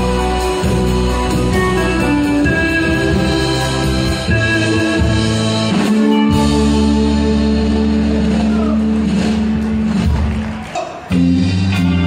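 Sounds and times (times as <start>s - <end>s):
rock band holding a loud chord: 0.0s - 12.0s.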